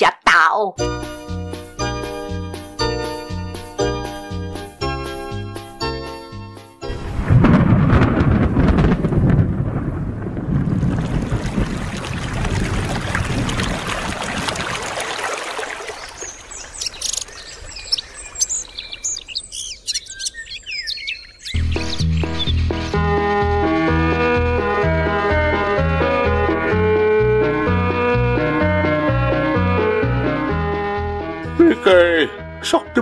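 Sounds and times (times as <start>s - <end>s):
thunder rumble: 6.8s - 15.2s, 21.6s - 31.6s
rain hiss: 6.9s - 19.3s
birds chirping: 13.6s - 26.5s.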